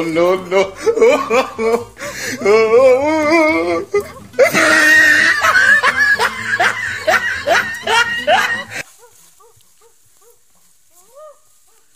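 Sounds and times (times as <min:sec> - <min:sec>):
loud rhythmic laughter: 0:00.0 - 0:08.8.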